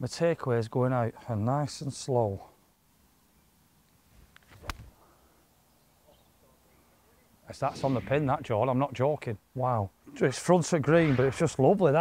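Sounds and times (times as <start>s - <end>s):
golf club swish: 4.2s - 5.0s.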